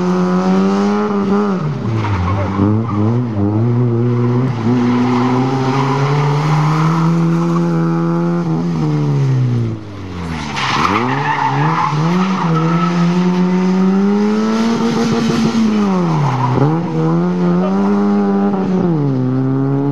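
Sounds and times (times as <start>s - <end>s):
car engine revving hard: 0.0s - 9.8s, 10.8s - 19.9s.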